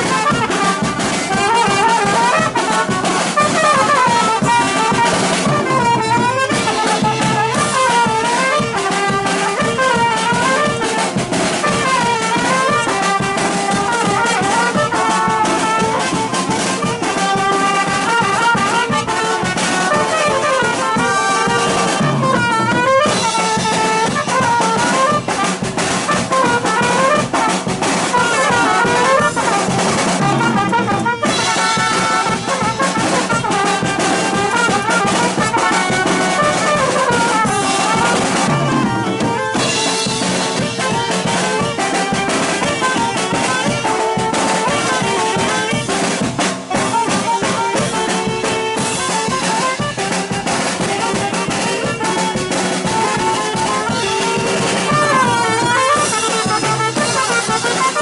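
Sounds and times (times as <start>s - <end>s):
brass band playing: 0.0s - 58.0s
drums keeping steady beat: 0.0s - 58.0s.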